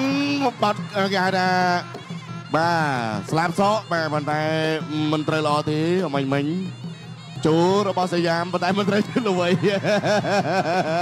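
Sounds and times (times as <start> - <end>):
oboe sliding melody: 0.0 - 11.0.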